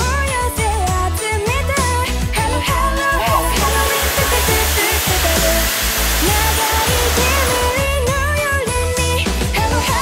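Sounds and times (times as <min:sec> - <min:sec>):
upbeat pop song: 0:00.0 - 0:10.0
rocket engine roaring: 0:03.3 - 0:07.8.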